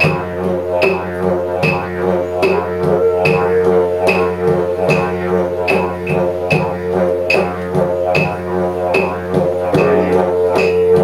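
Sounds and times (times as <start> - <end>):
didgeridoo drone: 0.0 - 11.0.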